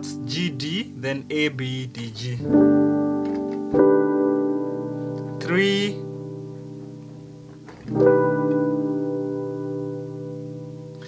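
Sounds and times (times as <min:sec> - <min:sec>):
electric piano chords: 0:00.0 - 0:11.0.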